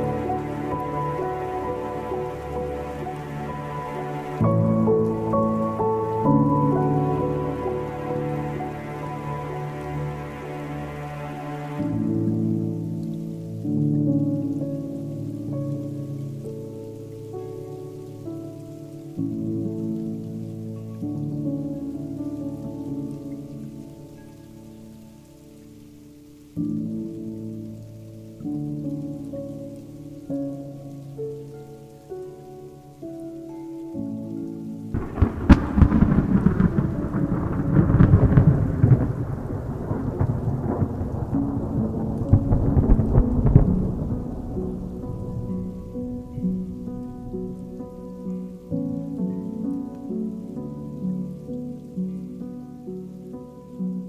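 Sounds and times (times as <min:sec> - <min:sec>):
crackling thunder rumble: 0:00.0 - 0:33.2, 0:34.0 - 0:54.0
rain: 0:00.0 - 0:54.0
slow ambient music: 0:00.0 - 0:54.0.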